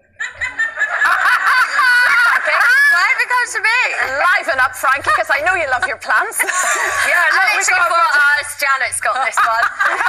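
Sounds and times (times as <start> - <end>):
women laughing: 0.2 - 3.4, 4.9 - 8.4, 9.0 - 10.0.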